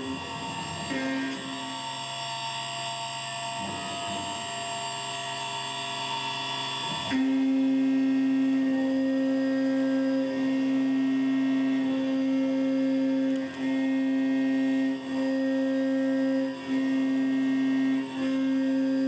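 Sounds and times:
mill cutting aluminum humming: 0.0 - 19.0.

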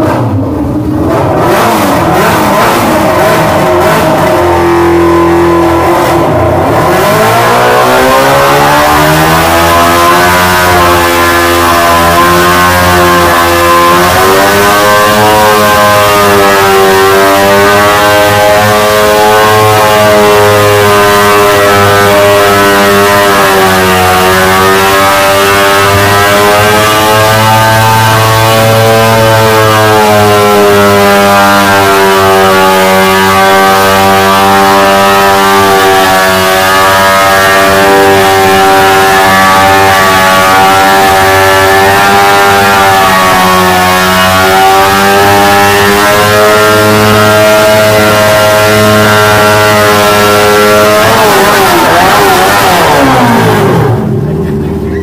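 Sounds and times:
motorcycle engine at high revs: 0.0 - 55.0.

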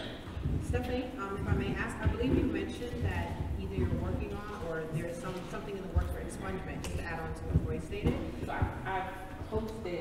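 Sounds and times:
indistinct voices in large room: 0.0 - 10.0.

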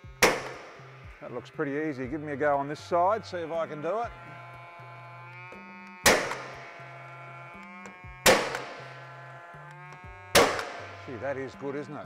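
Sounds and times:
background music: 0.0 - 12.0
nail gun shots: 0.2 - 0.8, 6.0 - 6.6, 8.2 - 8.8, 10.3 - 11.0.

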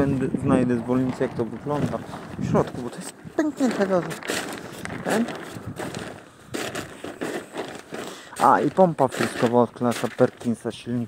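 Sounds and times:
plastic tarpaulin rustling: 0.0 - 11.0.

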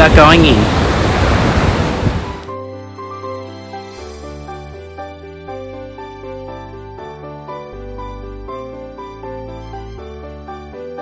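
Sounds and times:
ocean surf breaking: 0.0 - 2.5
wind on microphone: 0.0 - 2.5
soft music with held notes: 2.2 - 11.0.

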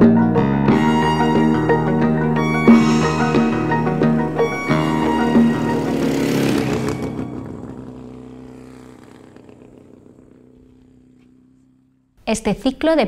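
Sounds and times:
held orchestral chord: 0.0 - 8.2.

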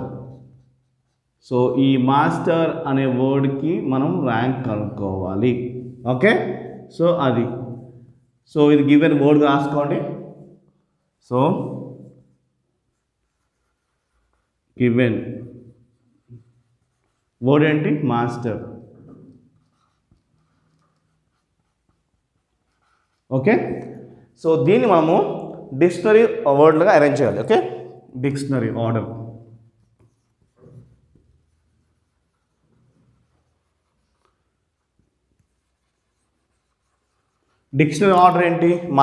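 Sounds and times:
marker pen writing on whiteboard: 0.0 - 3.9, 9.0 - 17.6, 18.3 - 27.9, 28.6 - 38.9.

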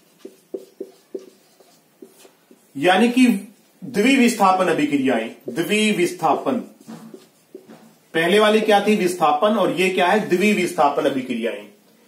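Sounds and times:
marker pen writing on whiteboard: 0.0 - 2.8, 4.3 - 8.0.

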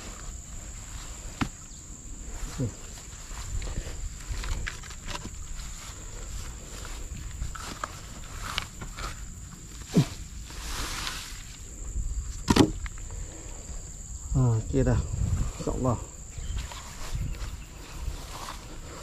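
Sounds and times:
grass rustling: 0.0 - 14.0, 14.8 - 19.0
insects droning: 0.0 - 19.0
wooden logs knocking: 12.4 - 13.0.

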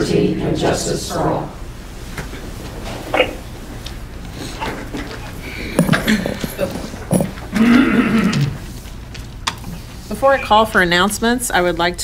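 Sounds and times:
chairs creaking and shifting: 2.0 - 10.2.

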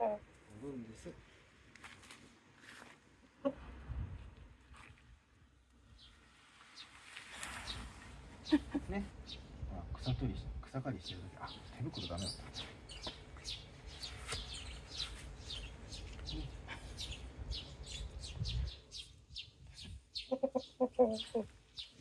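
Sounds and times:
wind rumble on microphone: 3.6 - 5.2, 7.6 - 10.7, 17.1 - 20.1
small birds chirping: 5.8 - 22.0
rooster clucking: 20.3 - 21.5.

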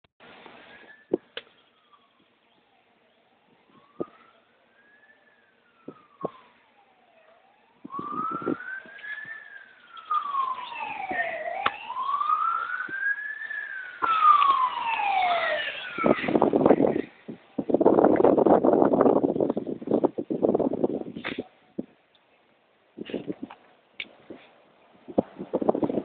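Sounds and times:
fire engine sirens wailing: 0.6 - 19.2.

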